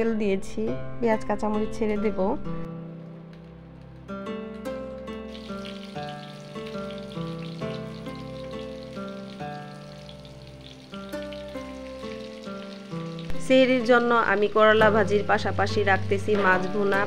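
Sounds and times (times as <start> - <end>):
background music with plucked notes: 0.0 - 17.0
vegetables sizzling in oil: 4.9 - 15.5.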